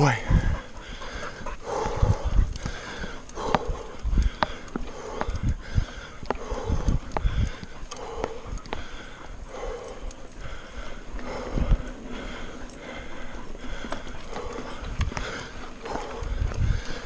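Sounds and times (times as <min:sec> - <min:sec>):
heavy rhythmic breathing: 0:00.0 - 0:17.0.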